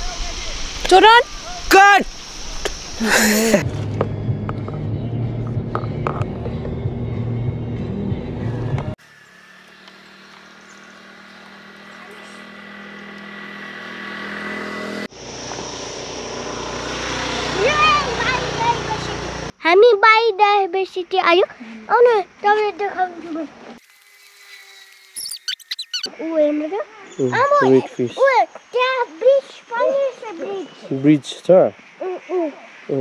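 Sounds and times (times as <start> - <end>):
child speaking: 0.0 - 2.0, 11.9 - 12.5, 17.5 - 23.6, 26.1 - 31.0, 32.0 - 32.7
car cabin engine and road drone: 3.6 - 19.6.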